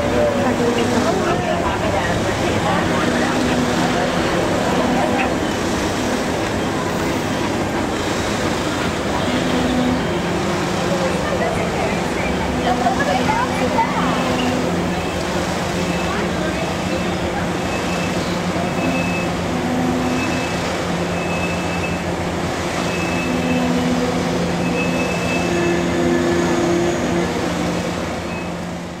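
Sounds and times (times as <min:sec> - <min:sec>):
train rumble and hum: 0:00.0 - 0:29.0.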